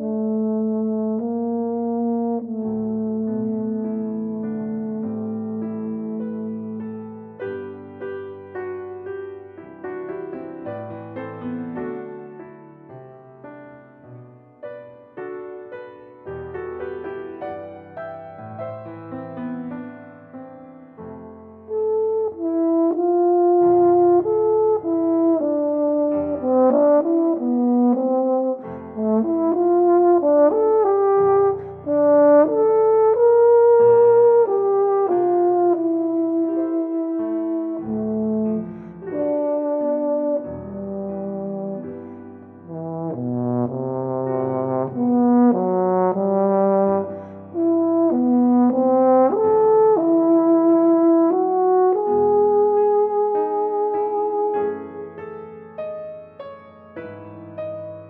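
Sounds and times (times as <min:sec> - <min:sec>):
piano accompaniment: 0:00.0 - 0:58.0
euphonium melody: 0:21.7 - 0:58.0.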